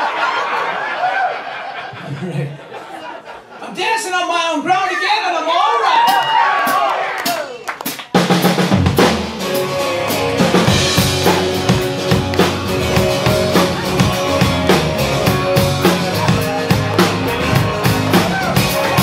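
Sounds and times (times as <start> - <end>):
drum kit beat: 6.0 - 19.0
electric bass: 8.5 - 19.0
electric guitars: 8.8 - 19.0.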